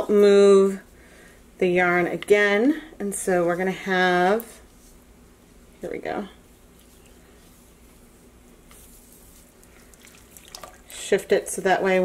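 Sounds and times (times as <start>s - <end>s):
small drips and splashes: 9.6s - 11.0s
water dripping and sloshing: 9.6s - 11.0s.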